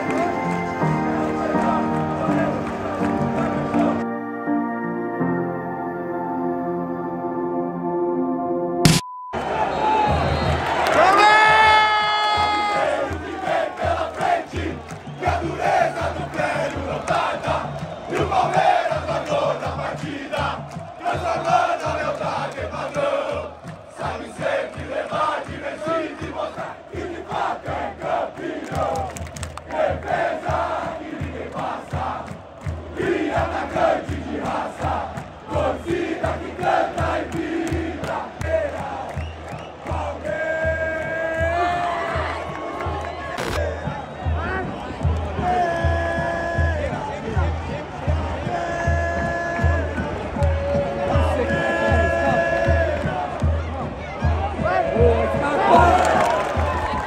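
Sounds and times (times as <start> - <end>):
crowd chanting and singing: 0.0 - 4.2, 9.4 - 57.0
drum beats: 8.9 - 57.0.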